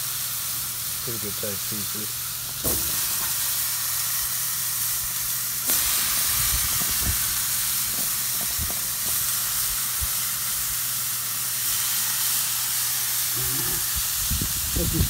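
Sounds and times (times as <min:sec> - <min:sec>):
chicken sizzling on a grill: 0:00.0 - 0:15.0.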